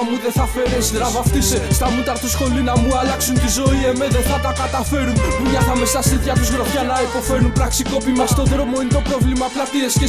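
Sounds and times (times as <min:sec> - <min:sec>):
man rapping over a beat: 0:00.0 - 0:10.0
steady bass line: 0:00.4 - 0:09.4
drum hits: 0:01.3 - 0:02.0, 0:02.8 - 0:04.4.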